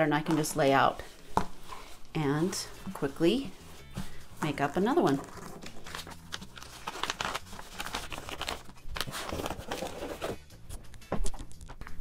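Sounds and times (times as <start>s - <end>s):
paper and cloth rustling: 0.0s - 10.4s.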